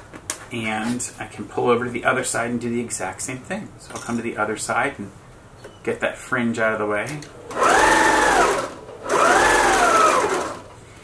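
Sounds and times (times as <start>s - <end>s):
sewing machine stitching: 7.5s - 10.7s.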